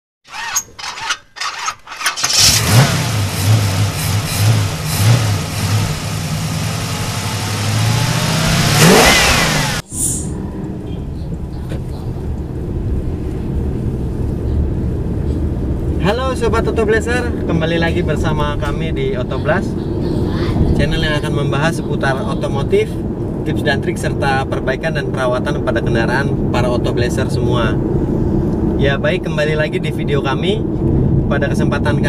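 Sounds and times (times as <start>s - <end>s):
car engine revving effect: 2.0s - 10.6s.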